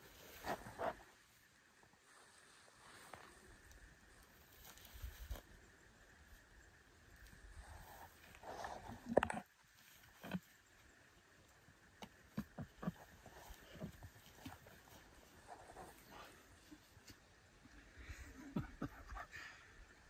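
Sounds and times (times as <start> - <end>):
footsteps in tall grass: 0.0 - 5.6.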